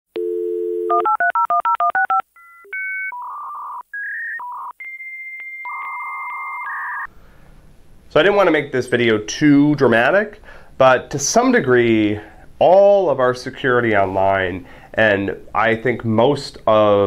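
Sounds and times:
telephone dial tone: 0.2 - 3.8
faint room noise: 7.1 - 17.0.

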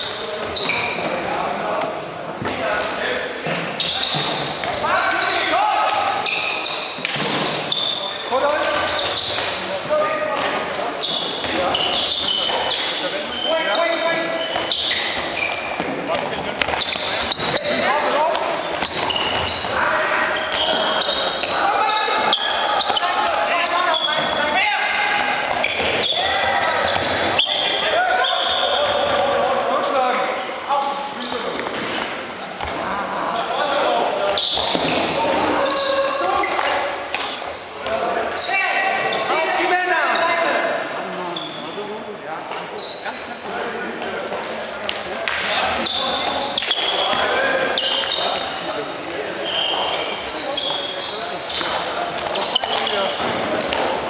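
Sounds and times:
shoes squeaking on gym floor: 0.0 - 1.3, 3.3 - 29.3, 33.9 - 40.4, 41.2 - 43.4, 45.4 - 53.9
players calling out: 3.6 - 29.9, 32.8 - 40.7.

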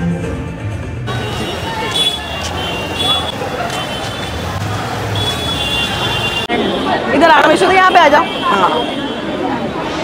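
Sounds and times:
crowd chatter: 0.0 - 10.0
traffic noise: 0.0 - 10.0.

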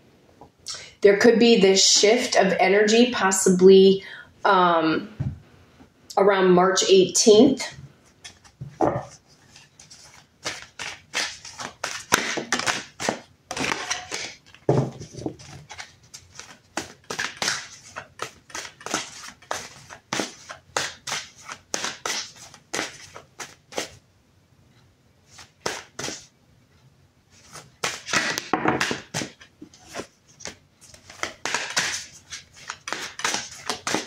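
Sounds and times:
cards being shuffled by hand: 8.1 - 24.0, 25.3 - 26.3, 27.4 - 34.0.

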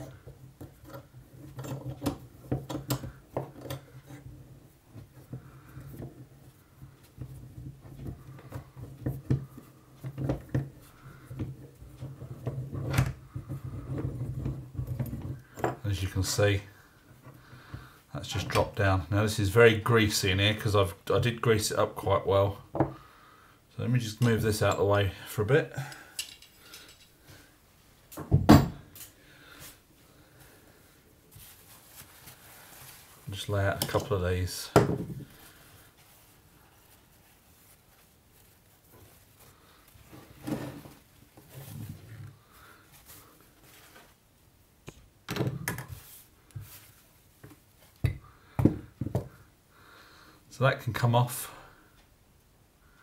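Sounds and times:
quiet handling noises: 24.0 - 49.5
metal parts clicking and scraping: 25.9 - 27.2.

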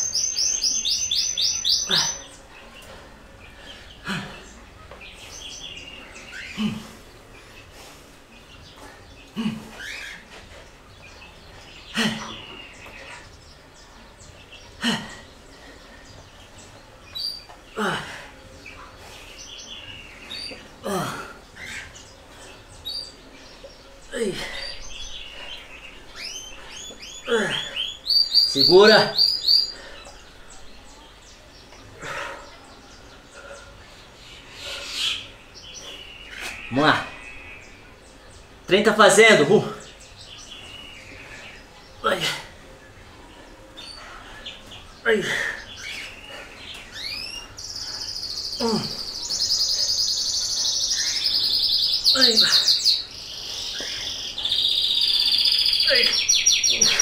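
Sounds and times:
songbird chirping: 0.0 - 57.0.

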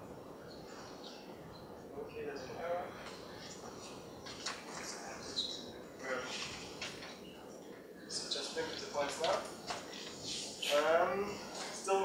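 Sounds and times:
quiet room noise: 0.0 - 12.0.

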